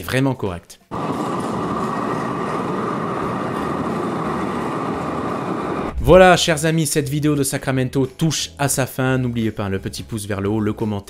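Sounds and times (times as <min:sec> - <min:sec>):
train rolling on rails: 0:00.9 - 0:06.0.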